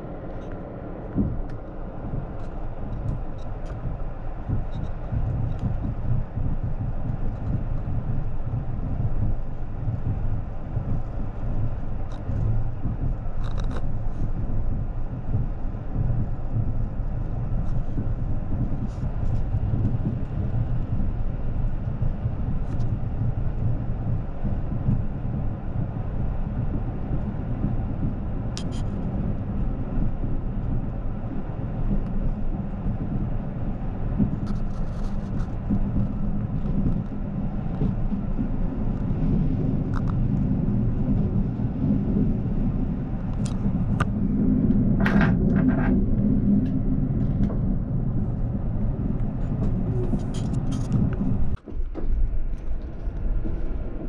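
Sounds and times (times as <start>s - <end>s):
train coach rumble: 0.0s - 54.0s.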